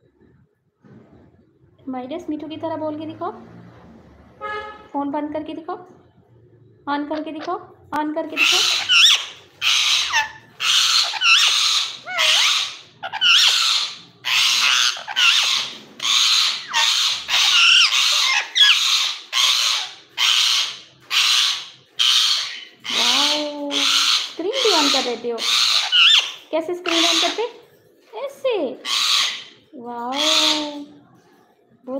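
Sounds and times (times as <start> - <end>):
parakeet raspy squeaky calls: 8.4 - 27.6, 28.8 - 31.0.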